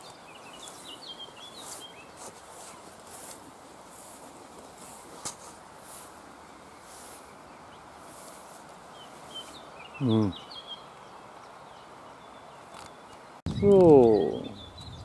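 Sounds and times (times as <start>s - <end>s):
small bird chirping: 0.0s - 3.3s, 5.8s - 15.0s
footsteps through grass: 0.0s - 9.8s
faint outdoor background: 0.0s - 15.0s.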